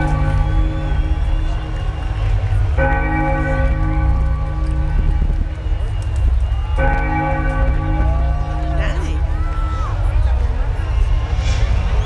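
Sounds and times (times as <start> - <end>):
large church bell ringing: 0.0 - 1.8, 2.7 - 5.6, 6.8 - 9.4
constant low rumble: 0.0 - 12.0.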